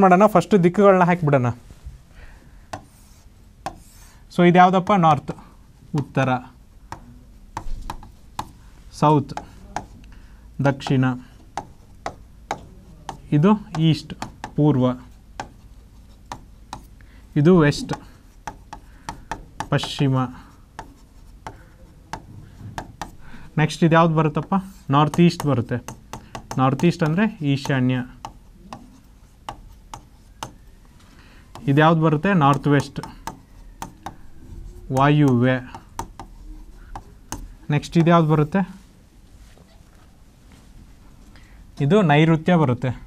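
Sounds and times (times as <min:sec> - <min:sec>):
taps on a touchscreen board: 0:02.7 - 0:02.9, 0:06.9 - 0:08.6, 0:09.3 - 0:09.9, 0:10.8 - 0:14.6, 0:15.4 - 0:15.6, 0:16.2 - 0:16.9, 0:17.8 - 0:20.1, 0:20.7 - 0:23.2, 0:24.4 - 0:30.6, 0:32.5 - 0:34.3, 0:34.9 - 0:38.2
faint pen rubbing: 0:02.7 - 0:04.2, 0:28.2 - 0:38.8.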